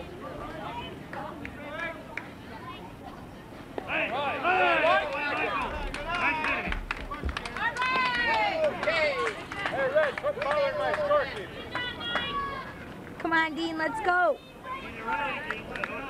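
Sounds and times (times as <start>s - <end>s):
people shouting and calling out: 3.8s - 16.0s.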